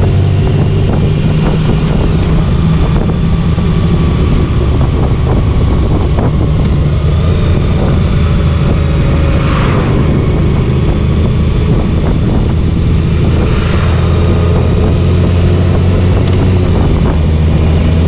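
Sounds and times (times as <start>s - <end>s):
motorcycle engine running: 0.0s - 18.0s
wind rushing over microphone: 0.0s - 18.0s.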